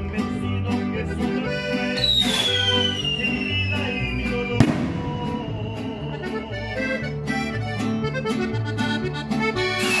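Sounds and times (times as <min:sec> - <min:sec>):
band music with guitar and accordion: 0:00.0 - 0:10.0
skyrocket whistle sliding down: 0:02.0 - 0:04.0
firework bang: 0:04.6 - 0:06.0.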